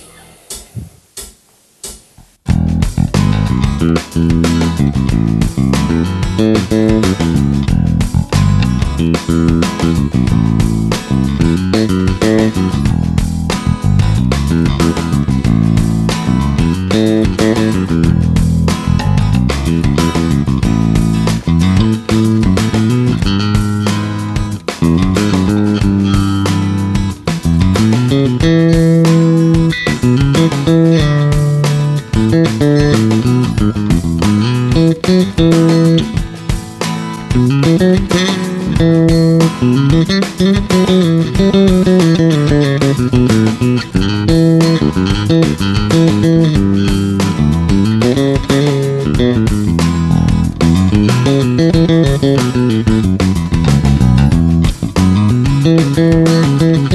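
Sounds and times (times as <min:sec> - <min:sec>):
electric bass guitar plucked notes: 0:02.4 - 0:56.9
guitar chords: 0:02.4 - 0:56.9.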